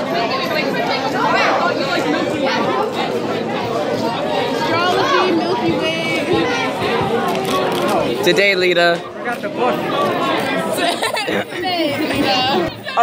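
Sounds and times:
people chattering: 0.0s - 13.0s.

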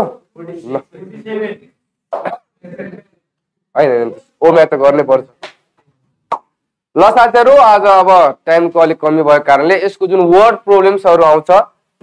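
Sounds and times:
man speaking: 0.0s - 1.8s, 3.8s - 5.4s, 6.9s - 11.8s
man's mouth sound: 2.1s - 3.0s, 6.3s - 6.5s.

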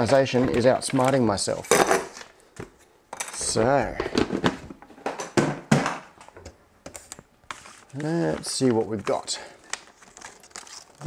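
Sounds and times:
hard items knocking on a desk: 4.0s - 6.2s.

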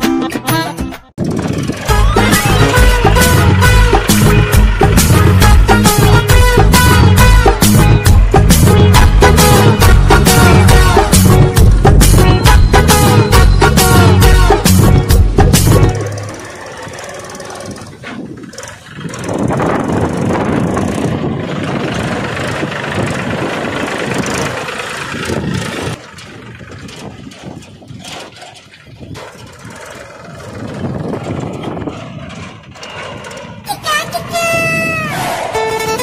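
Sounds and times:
small engine running: 1.2s - 35.9s
children's voices: 33.6s - 35.6s.

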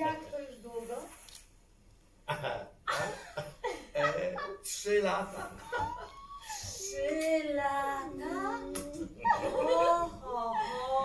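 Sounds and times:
woman's sliding sing-song voice: 6.7s - 11.0s.

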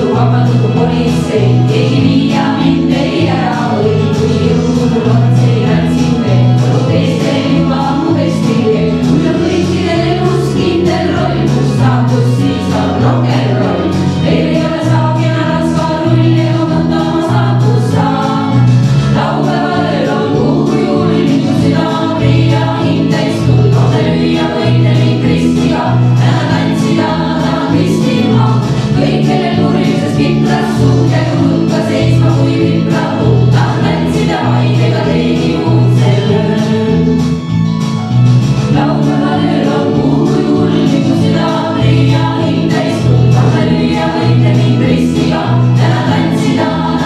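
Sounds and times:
women singing together amplified: 0.0s - 37.2s, 38.7s - 47.0s
low bass line: 0.0s - 47.0s.

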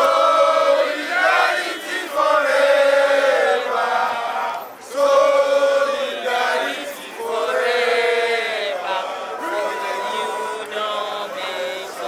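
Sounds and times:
protesters chanting in unison: 0.0s - 12.0s.

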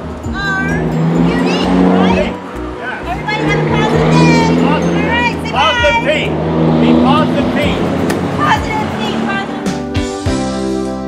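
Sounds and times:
voices calling out: 0.0s - 10.0s
low engine hum: 0.0s - 10.2s.

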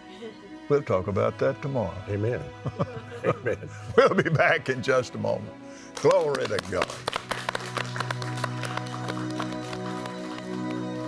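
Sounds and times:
soft music chords: 0.0s - 11.0s
audience applauding: 5.9s - 11.0s.

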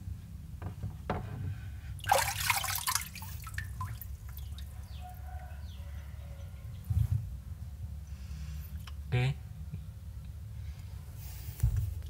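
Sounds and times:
water splashing in a tub: 2.0s - 5.0s
water dripping: 2.0s - 5.5s.

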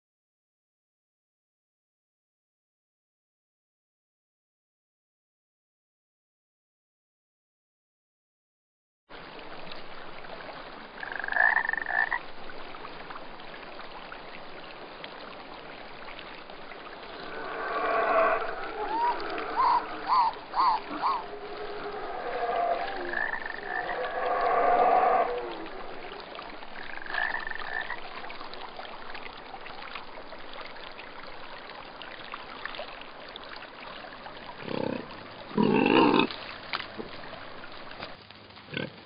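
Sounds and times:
rushing water: 9.1s - 39.0s
animal calls: 17.0s - 28.0s, 34.6s - 36.3s.

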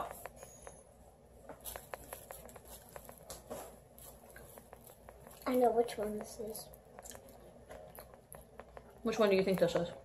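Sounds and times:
chewing with wet clicks: 4.1s - 10.0s.

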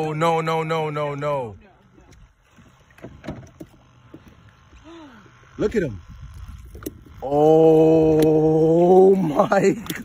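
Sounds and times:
waves lapping against hull: 0.0s - 7.2s.

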